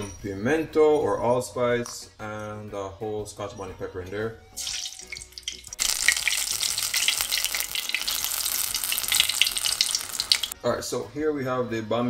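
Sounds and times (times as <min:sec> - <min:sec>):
pepper sizzling in hot oil: 0:04.6 - 0:10.6.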